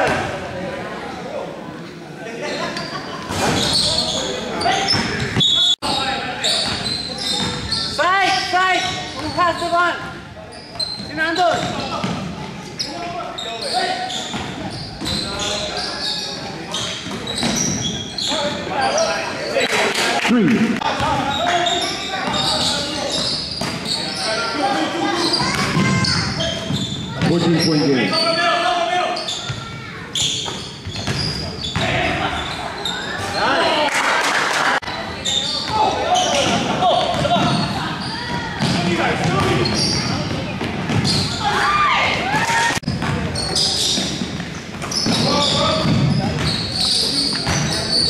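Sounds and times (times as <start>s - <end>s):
sneakers squeaking: 1.8s - 19.8s, 20.7s - 33.8s, 34.8s - 48.0s
basketball bouncing: 30.8s - 31.9s, 36.5s - 37.7s, 38.3s - 41.3s, 42.9s - 43.4s, 44.0s - 46.6s
players shouting: 41.2s - 42.9s.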